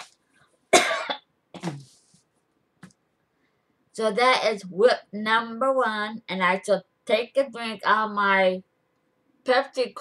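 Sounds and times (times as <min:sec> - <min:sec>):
woman coughing: 0:00.7 - 0:01.9.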